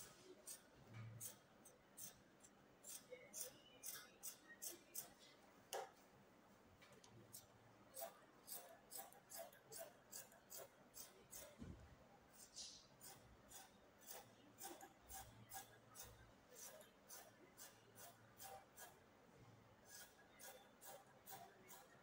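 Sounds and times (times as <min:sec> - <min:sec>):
scissors snipping fabric: 0:08.0 - 0:11.6, 0:13.0 - 0:18.9, 0:19.9 - 0:21.9.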